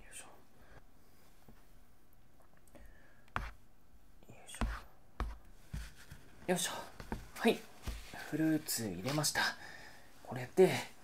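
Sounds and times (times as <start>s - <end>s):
person whispering: 0.0s - 0.5s, 4.2s - 4.8s, 6.5s - 9.6s.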